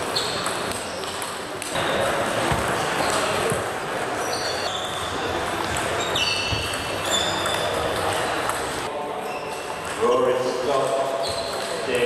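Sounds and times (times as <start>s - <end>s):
shoes squeaking on floor: 0.0s - 1.2s, 2.5s - 8.2s, 9.2s - 10.2s, 10.9s - 11.9s
murmur of voices: 0.0s - 12.0s.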